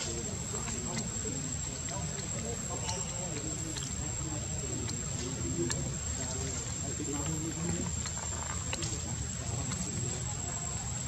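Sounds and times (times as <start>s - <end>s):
muffled voices: 0.0s - 11.0s.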